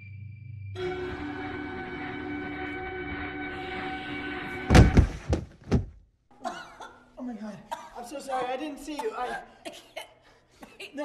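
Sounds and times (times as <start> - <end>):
eerie film score drone: 0.0 - 5.1
heavy thuds of bodies falling: 4.7 - 6.0.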